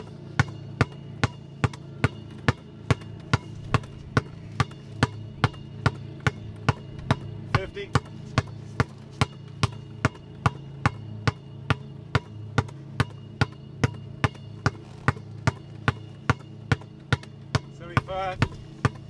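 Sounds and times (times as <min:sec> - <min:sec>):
basketball dribbled on asphalt: 0:00.0 - 0:19.0.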